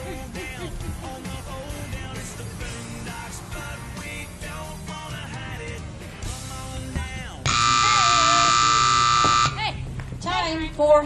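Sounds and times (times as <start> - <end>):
electronic timer buzzer: 7.5 - 9.6
announcer speaking: 7.5 - 9.8.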